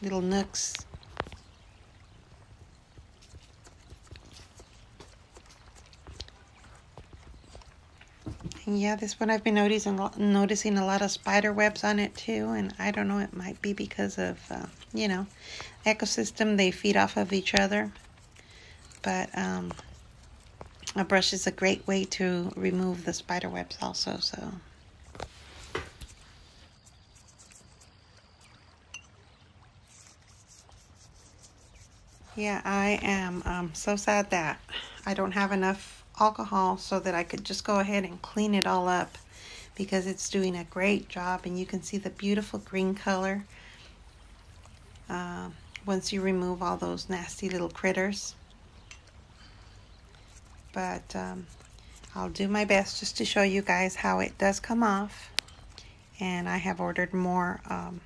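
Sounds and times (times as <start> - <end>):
brush clicks and scratches: 0.0 - 28.1, 29.8 - 58.0.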